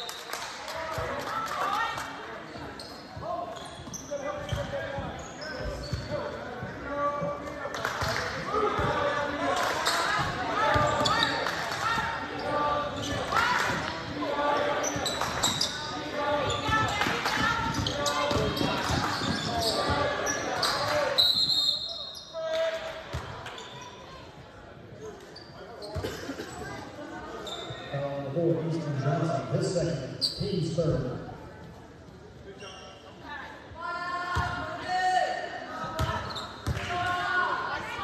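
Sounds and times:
voices in a hall: 0.0s - 38.0s.

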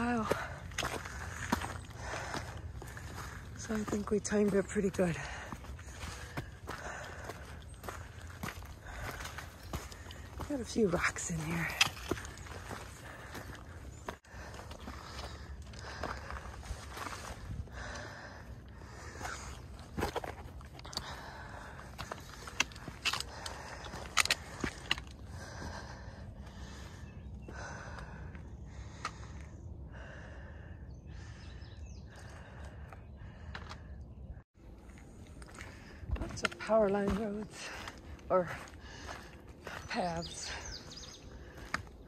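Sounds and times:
footsteps on rocky gravel trail: 0.0s - 30.2s, 31.8s - 34.0s, 34.6s - 42.0s.

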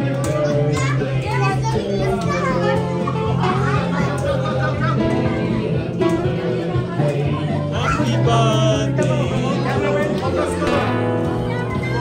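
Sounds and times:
background music with low bass: 0.0s - 12.0s
children chattering and calling: 0.0s - 12.0s.

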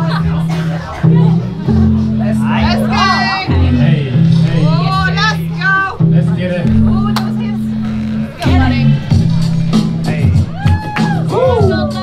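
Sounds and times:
deep bass line: 0.0s - 12.0s
hip hop track over sound system: 0.0s - 12.0s
rap vocals: 8.3s - 12.0s.

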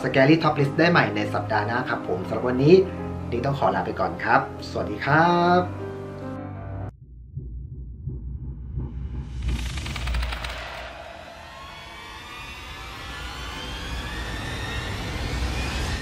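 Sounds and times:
deep rumble: 6.9s - 16.0s
slowly rising tones: 7.2s - 16.0s.

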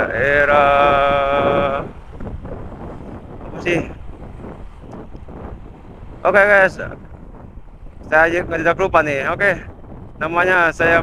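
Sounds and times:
motorcycle engine: 0.0s - 8.4s
wind buffeting microphone: 0.0s - 11.0s.

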